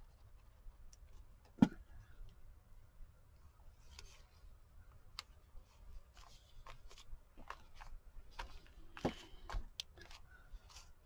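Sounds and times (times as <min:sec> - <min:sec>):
hands rustling paper and lace: 0:03.8 - 0:11.0.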